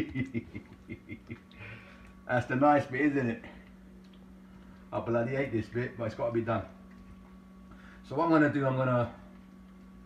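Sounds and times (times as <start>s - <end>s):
man chuckling: 0.0s - 1.9s.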